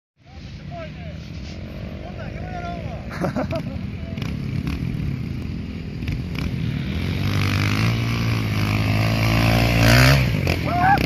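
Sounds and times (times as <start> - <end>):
dirt bike engine idling: 2.0 - 11.0.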